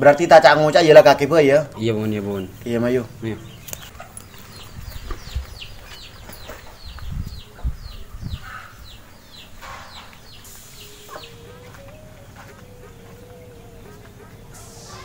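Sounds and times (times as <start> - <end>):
bird chirping: 0.0 - 15.0
people moving about rustling: 1.6 - 8.1, 8.7 - 15.0.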